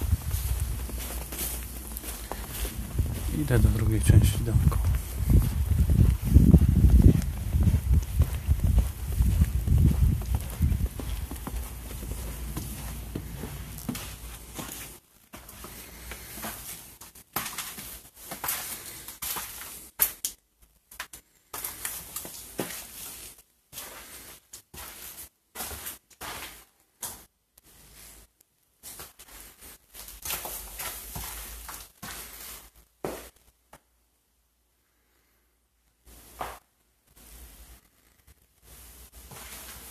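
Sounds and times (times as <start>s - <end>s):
low rumble on microphone: 0.0s - 13.8s
footsteps crunching through snow: 0.0s - 19.9s, 28.8s - 33.4s, 38.7s - 39.9s
footsteps on debris-strewn floor: 0.0s - 33.9s, 36.0s - 39.9s.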